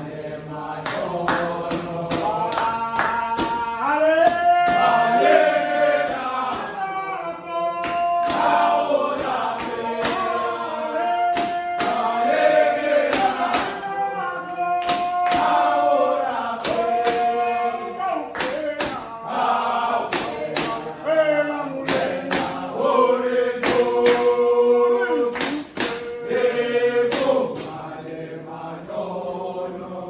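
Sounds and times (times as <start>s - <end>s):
men singing in unison: 0.0s - 30.0s
sharp percussive hits: 7.8s - 10.5s, 11.3s - 13.8s, 21.8s - 22.7s, 25.3s - 27.9s.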